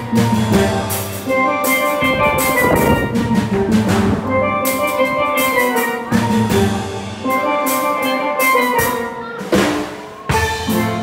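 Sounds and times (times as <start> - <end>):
steady drum beat: 0.0 - 11.0
steel drums melody: 0.0 - 11.0.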